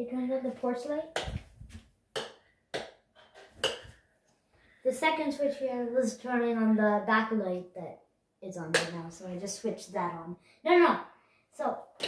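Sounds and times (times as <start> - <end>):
footsteps on hard floor: 1.3 - 1.9.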